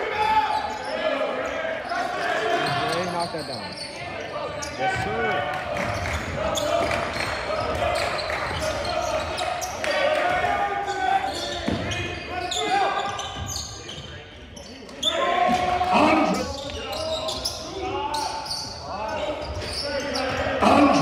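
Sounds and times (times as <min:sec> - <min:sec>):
players and spectators calling out: 0:00.0 - 0:21.0.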